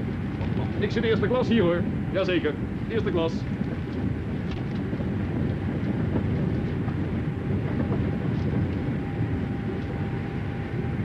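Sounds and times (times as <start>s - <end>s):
train rumbling inside carriage: 0.0s - 11.0s.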